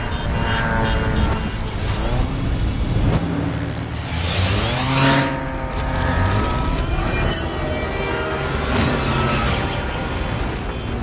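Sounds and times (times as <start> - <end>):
reversed propeller plane drone: 0.0 - 10.1.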